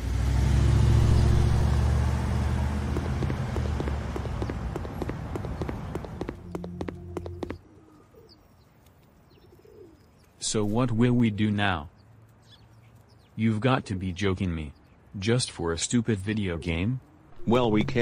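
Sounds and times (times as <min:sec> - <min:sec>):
car engine driving off: 0:00.0 - 0:07.4.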